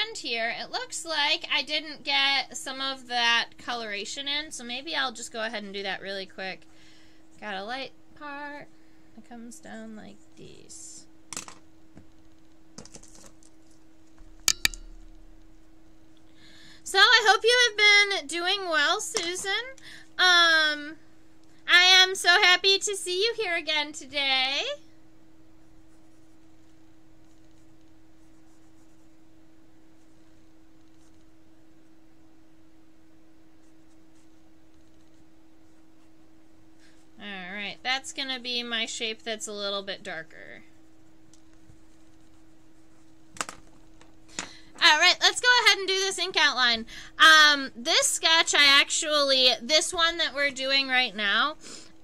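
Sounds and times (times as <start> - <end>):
faint steady hum: 0.0 - 52.0
faint scratches: 25.6 - 29.3, 29.9 - 31.9, 33.5 - 37.3, 39.9 - 43.2.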